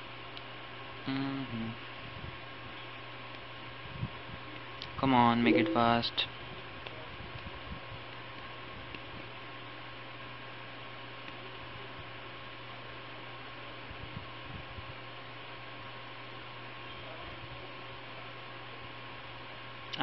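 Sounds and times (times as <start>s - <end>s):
faint high tone: 5.5s - 6.1s.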